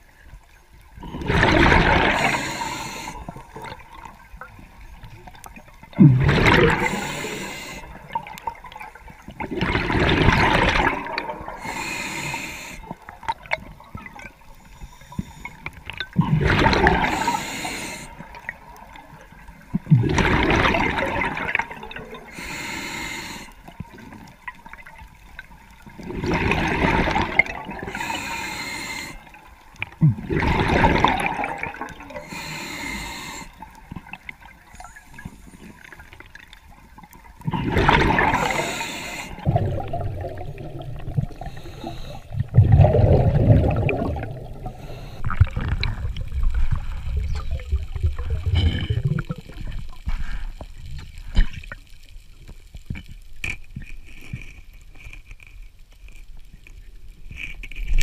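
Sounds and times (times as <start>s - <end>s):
bubbling exhaled air underwater: 0.9s - 14.4s, 15.2s - 51.8s
diver breathing through regulator: 1.0s - 3.6s, 6.1s - 8.1s, 10.8s - 13.0s, 16.4s - 18.5s, 22.2s - 23.7s, 26.6s - 29.4s, 30.4s - 33.8s, 37.6s - 45.8s.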